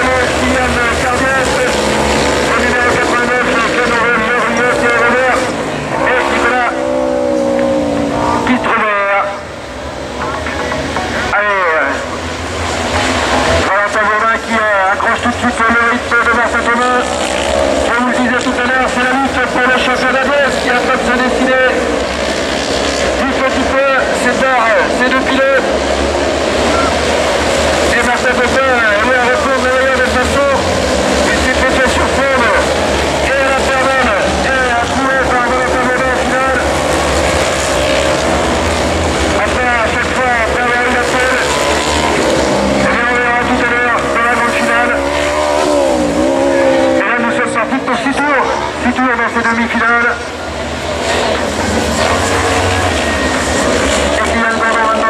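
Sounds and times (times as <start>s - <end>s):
racing buggy engines revving: 0.0s - 55.0s.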